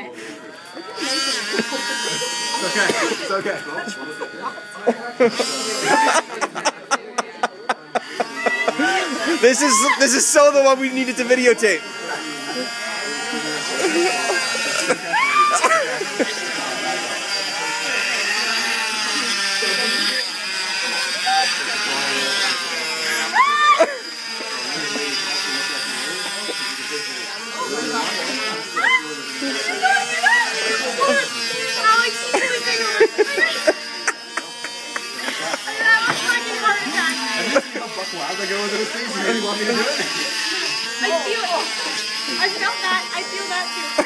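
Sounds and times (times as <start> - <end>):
voices: 0.0 - 44.0
cast saw buzzing whine: 0.5 - 44.0
excited laughter: 4.1 - 10.0, 13.8 - 16.5, 32.1 - 36.1.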